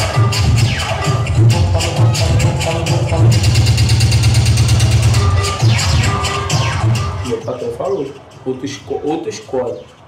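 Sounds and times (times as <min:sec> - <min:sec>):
funk music with heavy bass: 0:00.0 - 0:10.0.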